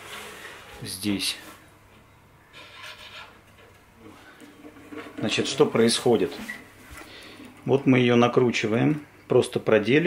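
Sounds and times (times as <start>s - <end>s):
guitar string rubbing and scraping: 2.5s - 7.1s.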